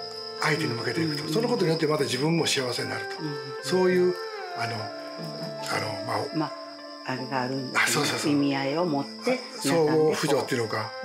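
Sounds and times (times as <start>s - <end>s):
high insect chirring: 0.0s - 11.0s
soft background music: 0.0s - 11.0s.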